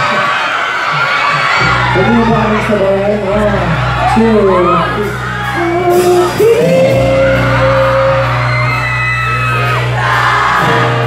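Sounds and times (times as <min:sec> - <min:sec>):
crowd shouting and singing along: 0:00.0 - 0:11.0
electric bass and guitar chords: 0:00.0 - 0:11.0.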